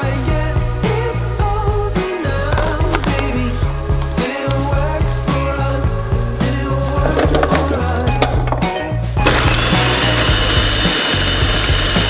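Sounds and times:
background music with bass line: 0:00.0 - 0:12.0
food processor whirring: 0:09.2 - 0:12.0.

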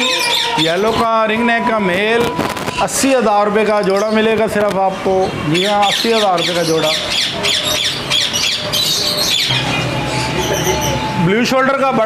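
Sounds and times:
caged birds chirping and squawking: 0:00.0 - 0:12.0.

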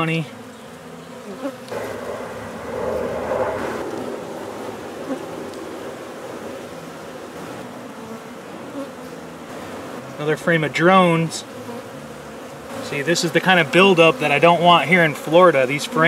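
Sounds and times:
honey bees buzzing: 0:00.0 - 0:16.0.

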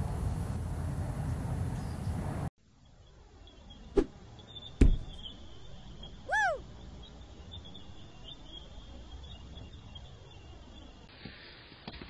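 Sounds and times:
whistle-like call: 0:06.3 - 0:06.6.

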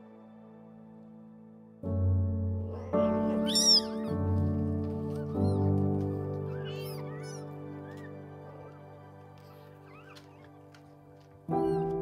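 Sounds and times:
background music: 0:00.0 - 0:12.0
kittens mewing: 0:02.7 - 0:04.4, 0:06.5 - 0:08.1.

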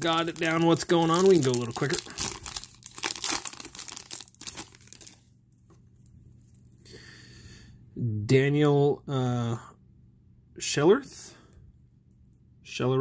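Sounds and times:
foil wrapper tearing and crinkling: 0:00.0 - 0:05.2.

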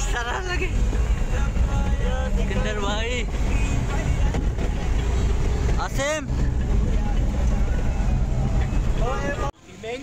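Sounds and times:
van engine and road noise: 0:00.0 - 0:10.0.

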